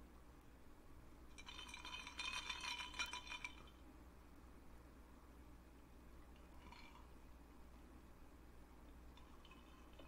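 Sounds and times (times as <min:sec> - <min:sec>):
glass clinking: 0:01.3 - 0:03.7.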